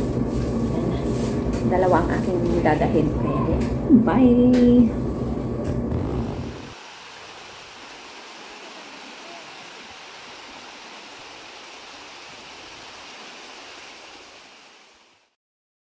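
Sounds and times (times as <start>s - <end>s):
brief low rumble: 5.4s - 6.8s
water rushing over rocks: 5.9s - 15.3s.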